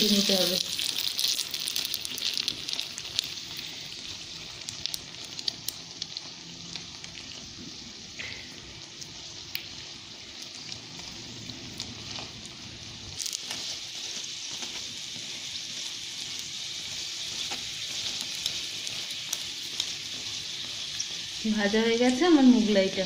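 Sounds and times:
oil popping and crackling: 0.0 - 22.5
bread sizzling in oil: 0.0 - 23.0.

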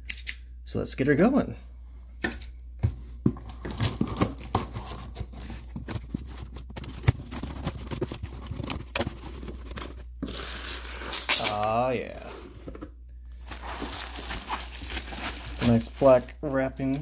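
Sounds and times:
cardboard scratching and clicks: 3.4 - 11.3.

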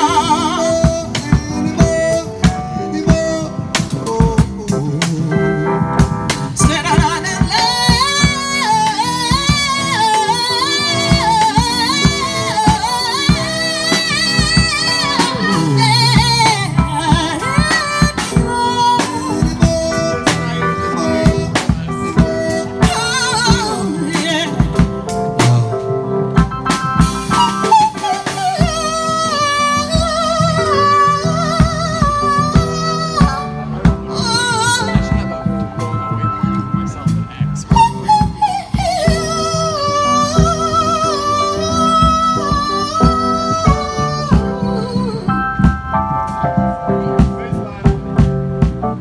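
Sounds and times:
drum kit beat: 0.0 - 49.0
keyboard: 0.0 - 49.0.

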